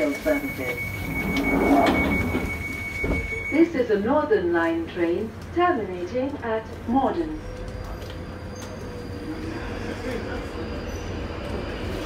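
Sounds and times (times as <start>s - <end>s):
train running noise: 0.0s - 12.0s.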